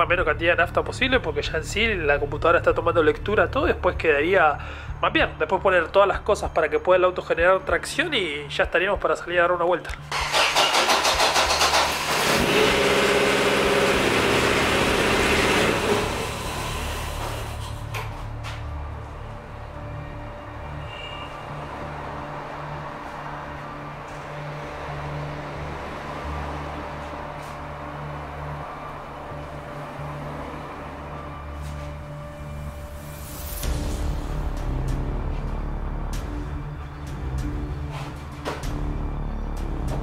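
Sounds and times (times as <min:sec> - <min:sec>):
car engine revving then idling: 0:10.1 - 0:17.8.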